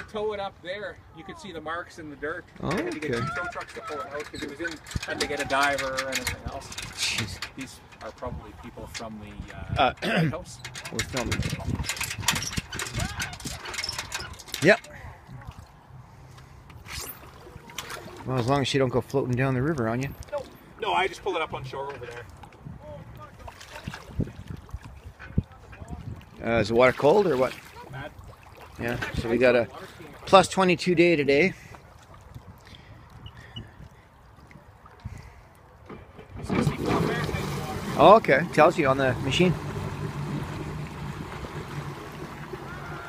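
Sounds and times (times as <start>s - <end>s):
jet pump throwing water: 9.9s - 14.8s, 36.2s - 43.0s
personal watercraft engine revving: 36.4s - 43.0s.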